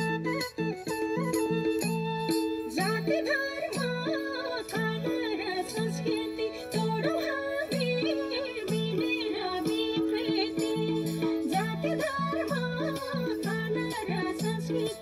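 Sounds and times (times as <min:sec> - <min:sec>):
folk dance music: 0:00.0 - 0:15.0
person singing: 0:02.3 - 0:15.0.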